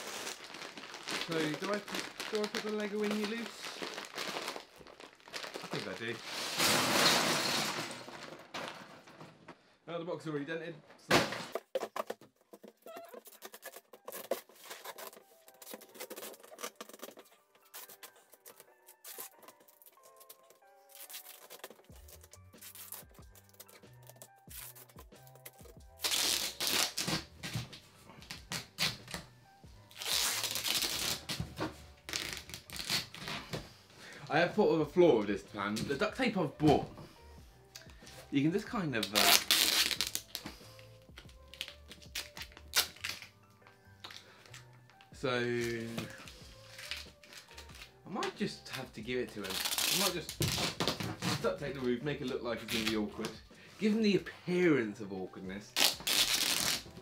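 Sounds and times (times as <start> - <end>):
duct tape ripping off roll: 0.0 - 7.1, 13.0 - 29.3, 29.9 - 33.5, 39.0 - 40.5, 41.5 - 43.3, 48.7 - 51.6, 52.6 - 53.4, 55.7 - 57.0
plastic bag rustling: 0.0 - 9.5
quiet background music: 0.0 - 57.0.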